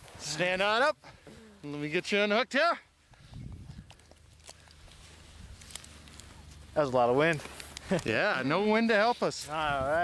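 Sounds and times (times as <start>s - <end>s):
soft rustling: 3.0s - 10.0s.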